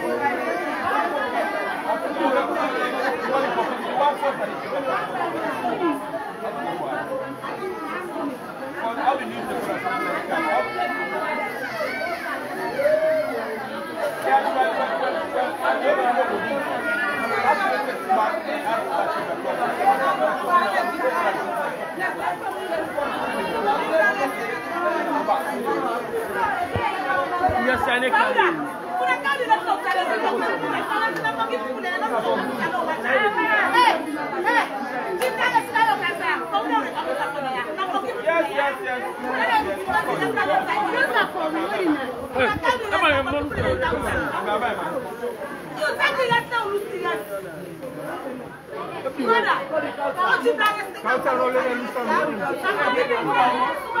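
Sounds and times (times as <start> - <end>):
crowd chatter: 0.0 - 54.0.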